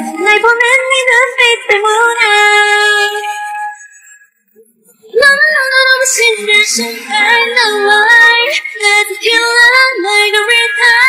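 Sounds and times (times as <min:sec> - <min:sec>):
woman singing pop vocals: 0:00.0 - 0:03.6, 0:05.1 - 0:11.0.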